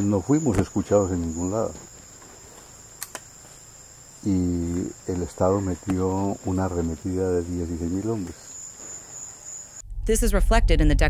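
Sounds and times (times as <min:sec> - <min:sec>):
chorus of forest insects: 0:00.0 - 0:09.8.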